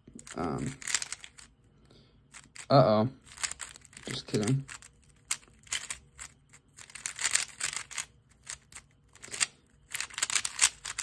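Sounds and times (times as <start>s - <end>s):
puzzle cube plastic clicking: 0.1s - 1.5s, 2.3s - 11.0s.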